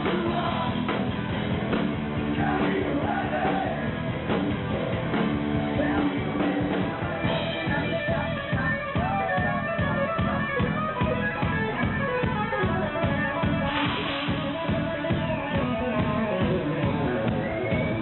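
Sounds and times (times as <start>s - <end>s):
live hard rock band: 0.0s - 18.0s.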